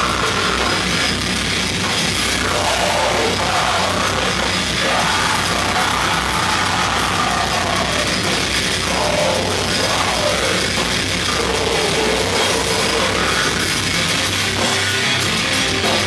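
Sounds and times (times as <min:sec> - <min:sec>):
bass guitar: 0:00.0 - 0:16.0
distorted electric guitars: 0:00.0 - 0:16.0
drum kit: 0:00.0 - 0:16.0.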